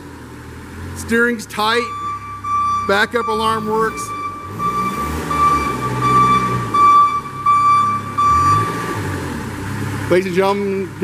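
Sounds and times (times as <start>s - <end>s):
diesel engine: 0.0s - 11.0s
forklift backup alarm beeping: 1.6s - 9.1s.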